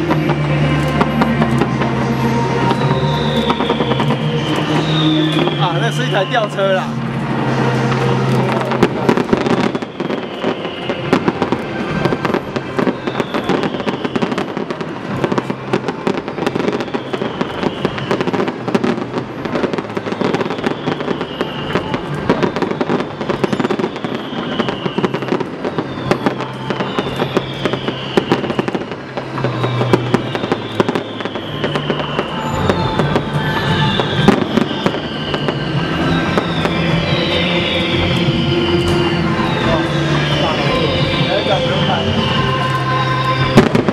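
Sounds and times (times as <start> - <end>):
fireworks bangs and crackles: 0.0 - 43.9
music playing: 0.0 - 43.9.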